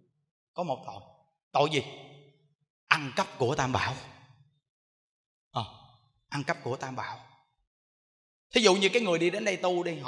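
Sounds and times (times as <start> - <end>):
man speaking: 2.9 - 4.0, 8.6 - 10.0.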